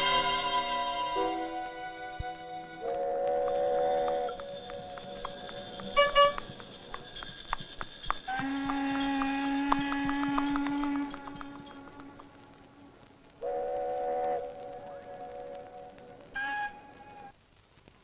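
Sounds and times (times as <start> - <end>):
orchestral film score: 0.0 - 6.6
horse hooves clip-clopping: 0.0 - 17.3.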